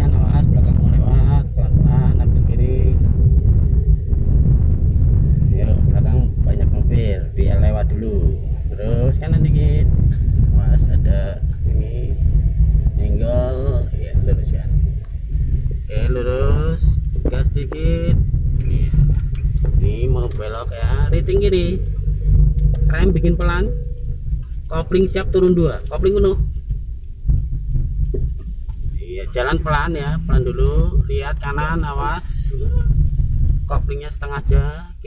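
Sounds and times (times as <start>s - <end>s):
car interior rumble: 0.0s - 35.0s
voices talking: 29.0s - 33.0s.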